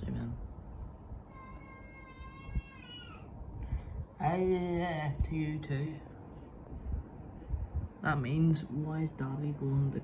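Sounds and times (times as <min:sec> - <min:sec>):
cat meowing: 0:01.3 - 0:03.3.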